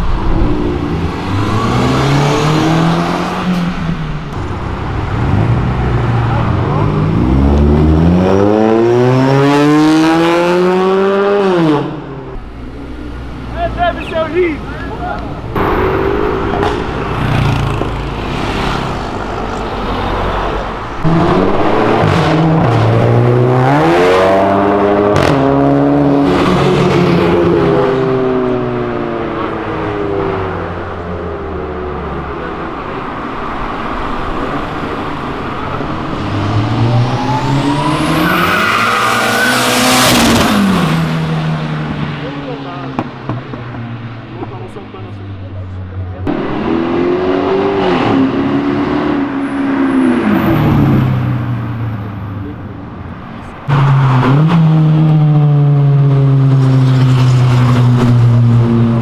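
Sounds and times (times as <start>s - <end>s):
car engines accelerating hard: 0.0s - 59.0s
high whine: 13.7s - 17.2s
car passing at speed: 15.5s - 31.0s, 33.0s - 42.3s.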